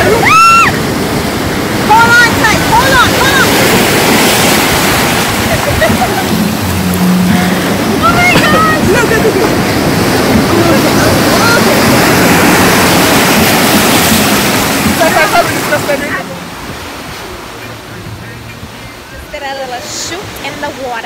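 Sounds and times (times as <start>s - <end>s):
surf crashing over rocks: 0.0s - 21.0s
voices calling out: 0.0s - 21.0s.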